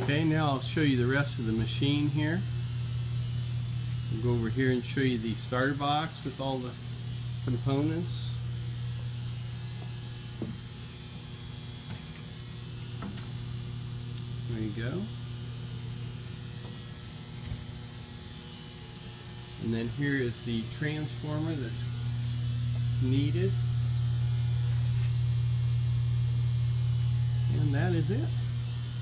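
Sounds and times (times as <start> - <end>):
electrical mains hum: 0.0 - 29.0
transformer humming: 19.6 - 29.0.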